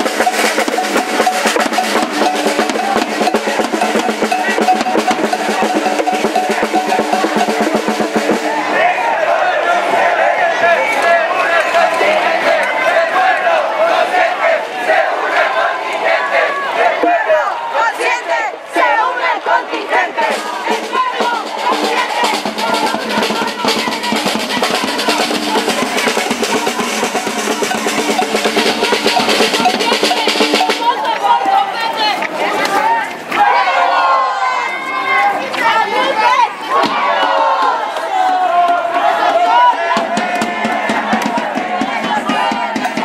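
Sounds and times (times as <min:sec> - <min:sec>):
drums beating: 0:00.0 - 0:17.4, 0:18.9 - 0:33.9, 0:35.6 - 0:43.0
crowd chanting and shouting: 0:00.0 - 0:43.0.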